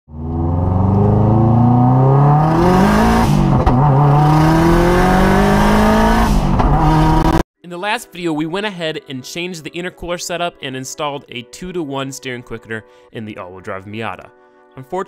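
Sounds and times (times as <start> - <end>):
car engine accelerating hard: 0.1 - 7.4.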